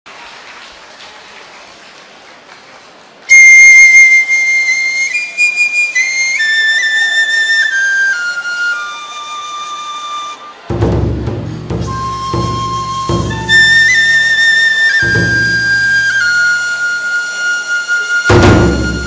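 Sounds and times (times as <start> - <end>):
bamboo flute melody: 3.3 - 19.0.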